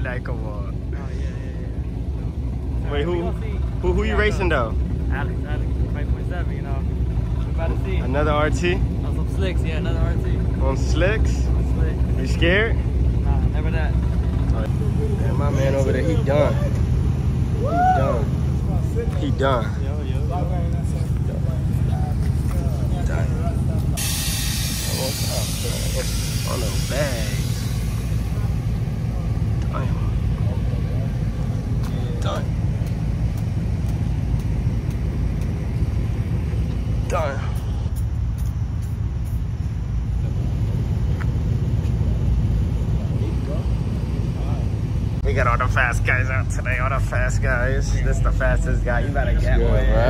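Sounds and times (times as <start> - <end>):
car engine idling: 0.0 - 50.0
people talking in background: 11.2 - 32.9
rush of hiss: 24.0 - 28.4.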